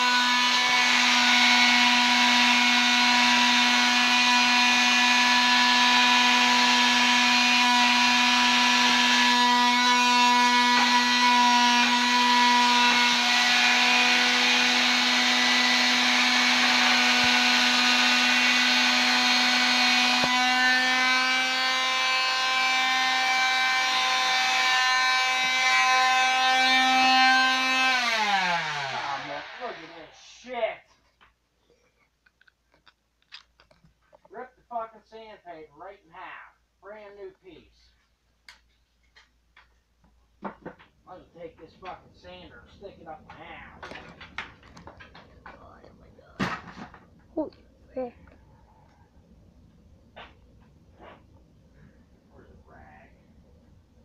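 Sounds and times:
electric grinder whining: 0:00.0 - 0:30.2.

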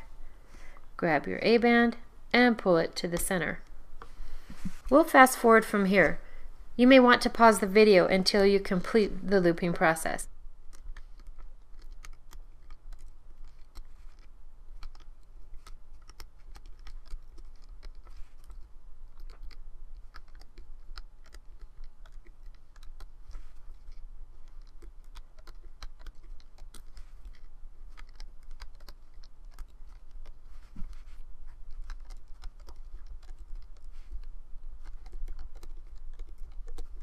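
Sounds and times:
low steady hum: 0:00.0 - 0:37.0.

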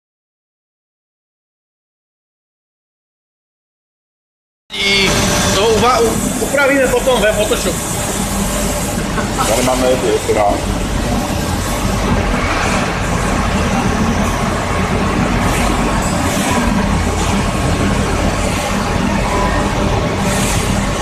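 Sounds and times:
lathe mechanical hum: 0:04.7 - 0:21.0
machine hiss: 0:04.8 - 0:21.0.

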